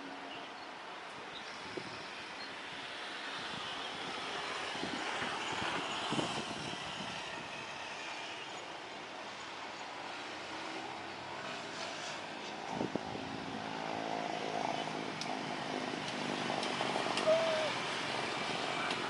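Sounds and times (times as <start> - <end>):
jet engines rushing: 1.6 - 19.0.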